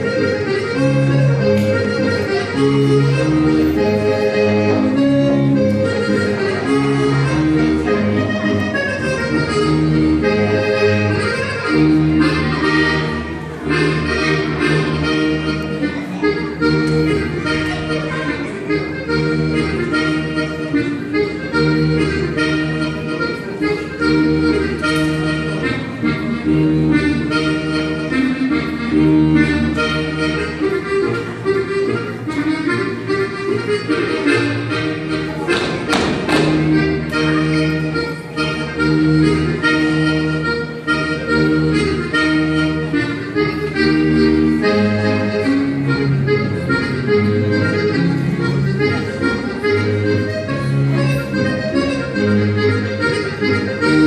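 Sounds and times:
accordion dance tune: 0:00.0 - 0:54.0.

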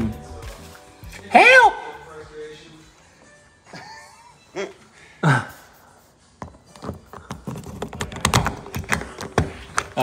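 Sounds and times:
lockset clicks and metal taps: 0:06.8 - 0:10.0.

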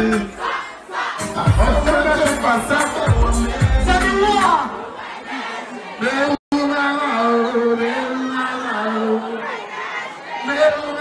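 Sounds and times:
concert music: 0:00.0 - 0:09.7
crowd shouting and cheering: 0:00.0 - 0:11.0.

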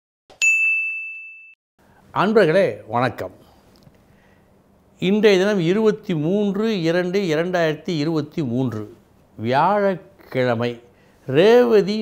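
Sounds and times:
bright bell ding: 0:00.3 - 0:01.6.

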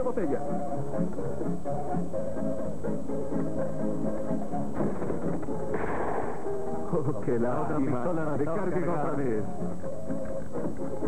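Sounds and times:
music of sustained notes: 0:00.0 - 0:11.0
muffled gunshot: 0:04.8 - 0:06.5.

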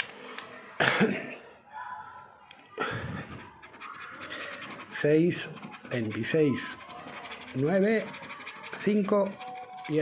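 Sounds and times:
finger scratching scratch card: 0:03.7 - 0:10.0.

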